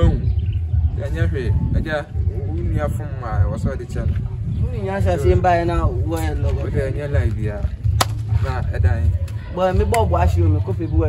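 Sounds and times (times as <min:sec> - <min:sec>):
men talking: 0:00.0 - 0:11.0
sharp crack: 0:07.9 - 0:08.3.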